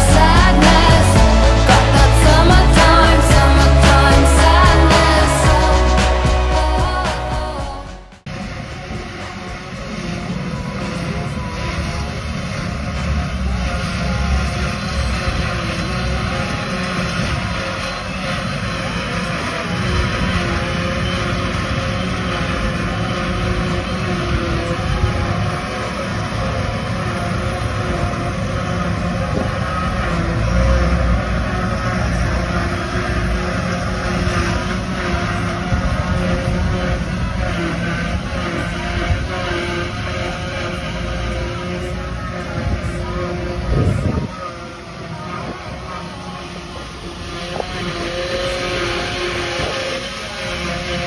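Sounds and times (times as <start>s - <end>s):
forage harvester blowing grass: 0.0s - 51.0s
tractor engines droning: 0.0s - 51.0s.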